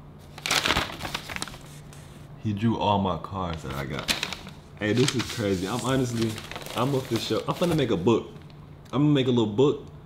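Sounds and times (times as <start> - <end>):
paper crinkling and rustling: 0.2 - 2.2, 3.5 - 8.6.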